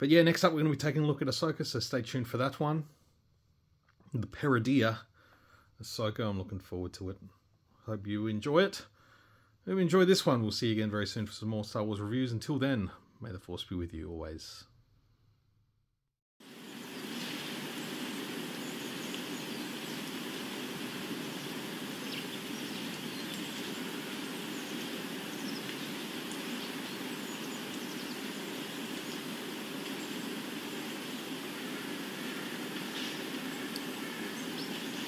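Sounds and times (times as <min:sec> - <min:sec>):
constant rushing noise: 0:16.5 - 0:35.0
faint bird chirps: 0:16.6 - 0:35.0.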